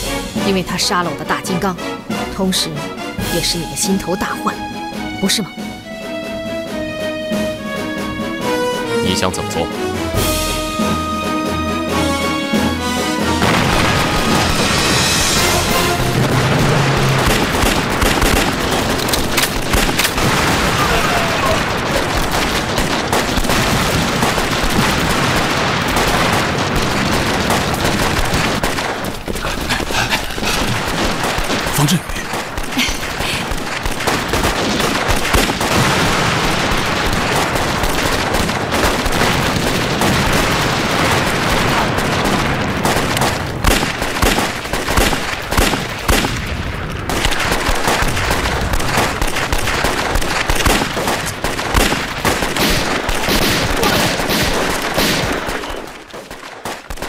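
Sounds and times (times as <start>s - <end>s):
rapid rifle gunfire: 13.2s - 57.0s.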